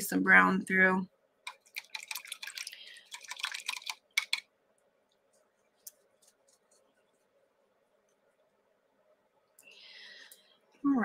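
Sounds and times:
painting tools clicking and tapping: 0:01.5 - 0:04.5.

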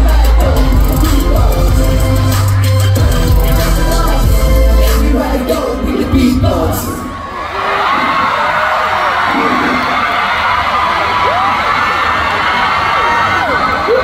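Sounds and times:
song backing track with heavy bass: 0:00.0 - 0:07.2
concert audience cheering and screaming: 0:00.0 - 0:14.0.

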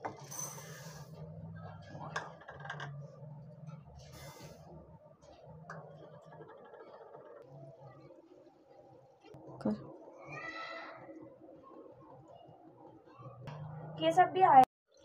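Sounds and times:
low hum: 0:11.2 - 0:14.6.

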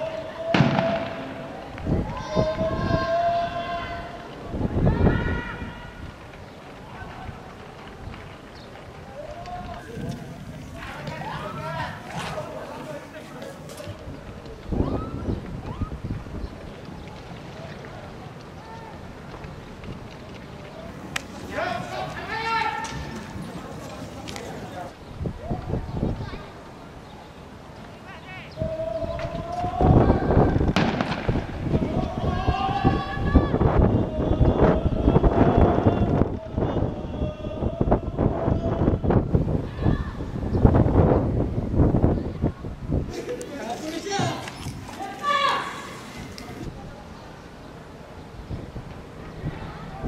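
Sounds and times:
faint distant shouts: 0:00.0 - 0:06.1, 0:08.9 - 0:16.0, 0:20.7 - 0:26.6, 0:28.1 - 0:40.4, 0:43.1 - 0:47.3
wind rumble on microphone: 0:01.6 - 0:26.7, 0:28.5 - 0:43.4, 0:48.2 - 0:50.0.

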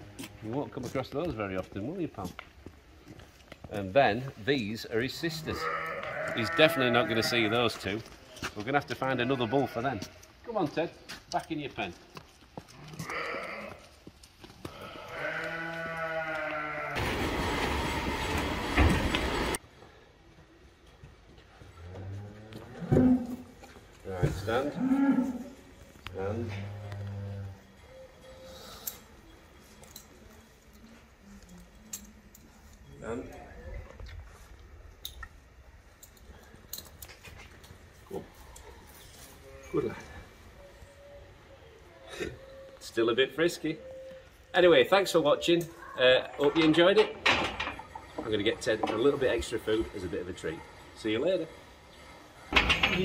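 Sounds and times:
rope halter clicks and rustles: 0:00.2 - 0:04.4, 0:07.5 - 0:09.1, 0:09.8 - 0:16.8, 0:27.8 - 0:39.5
farm animal calling: 0:05.2 - 0:07.9, 0:08.9 - 0:10.2, 0:12.8 - 0:13.9, 0:14.6 - 0:17.0, 0:38.4 - 0:47.1.

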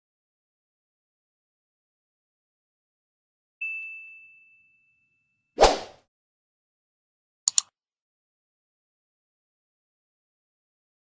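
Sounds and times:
high ding: 0:03.6 - 0:05.6.

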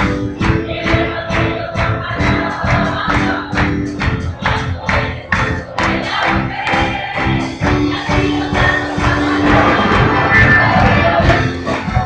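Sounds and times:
church band worship music: 0:00.0 - 0:12.0
people singing: 0:00.0 - 0:12.0.

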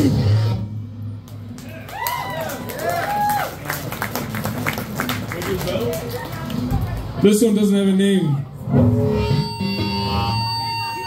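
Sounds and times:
crowd whooping: 0:01.6 - 0:04.4.

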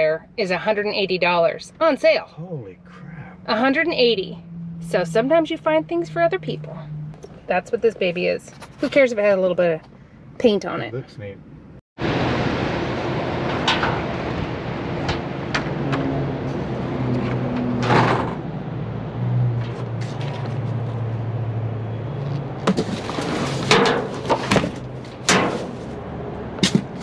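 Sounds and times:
steady low hum: 0:00.0 - 0:09.0.

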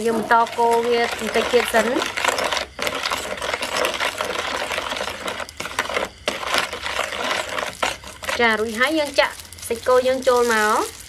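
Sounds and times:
spoon stirring in plastic bowl: 0:00.0 - 0:11.0.

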